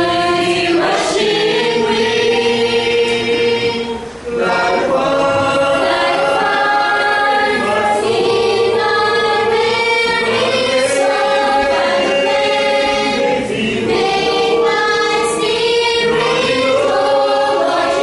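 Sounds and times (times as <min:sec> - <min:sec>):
mixed choir singing a cappella: 0:00.0 - 0:18.0.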